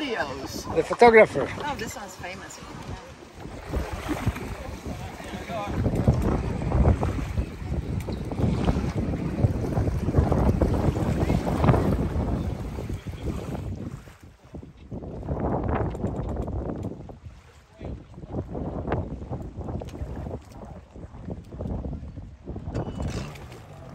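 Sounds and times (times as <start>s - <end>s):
wind buffeting microphone: 0.0s - 23.9s.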